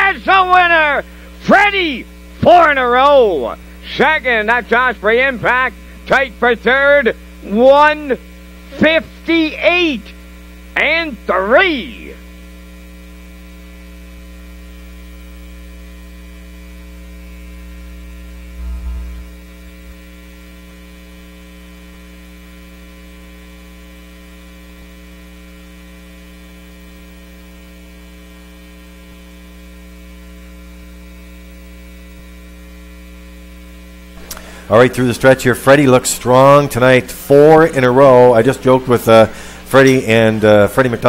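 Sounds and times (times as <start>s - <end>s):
electrical mains hum: 0.0s - 41.0s
low thump: 18.6s - 19.5s.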